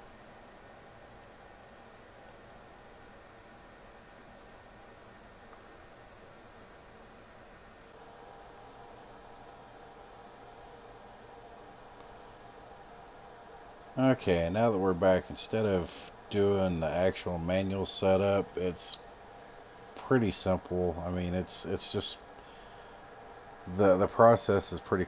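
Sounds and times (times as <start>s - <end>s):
faint hiss and hum: 0.0s - 25.0s
faint clicks: 1.1s - 1.4s, 4.4s - 4.6s.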